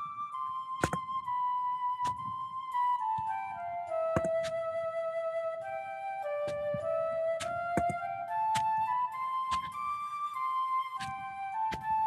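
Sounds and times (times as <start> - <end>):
slow flute melody: 0.0 - 12.0.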